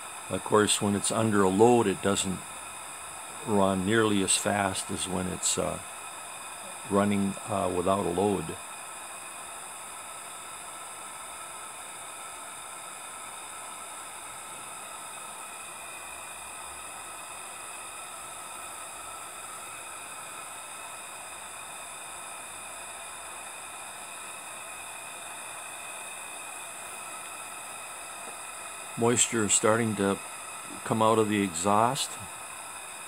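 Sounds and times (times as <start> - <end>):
steam boiler hissing: 0.0 - 33.0.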